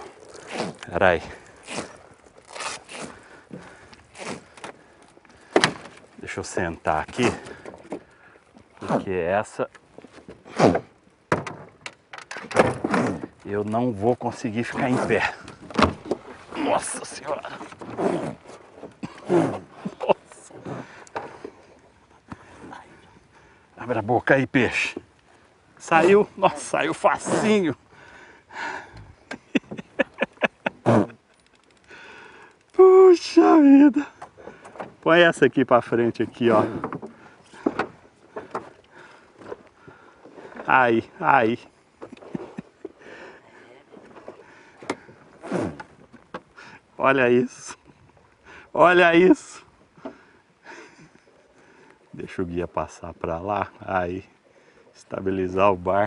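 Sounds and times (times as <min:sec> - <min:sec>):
soft knocks in aluminium boat: 0:10.0 - 0:13.4, 0:36.6 - 0:38.8.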